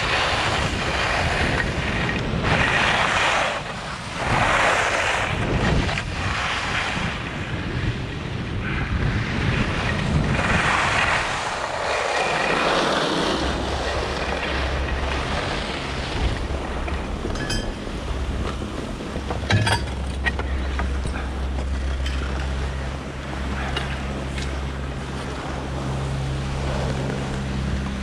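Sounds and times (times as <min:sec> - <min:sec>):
skis carving on snow: 0:00.0 - 0:17.2
wind buffeting microphone: 0:00.0 - 0:28.0
low steady hum: 0:10.9 - 0:28.0.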